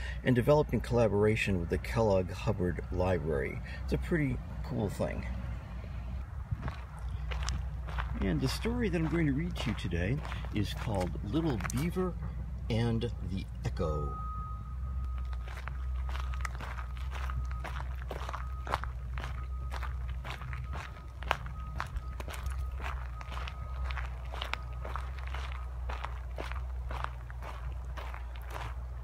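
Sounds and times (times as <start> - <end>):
footsteps on dirt path: 6.2 - 12.3, 14.8 - 29.0.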